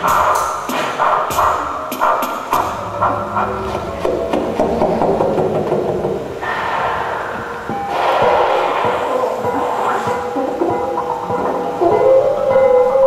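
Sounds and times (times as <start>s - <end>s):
experimental music noisy texture: 0.0s - 13.0s
low drone: 2.5s - 13.0s
wash of higher sound: 5.4s - 10.6s.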